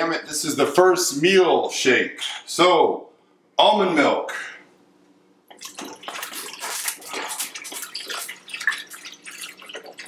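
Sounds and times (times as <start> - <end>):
milk pouring over ice: 5.5 - 10.0.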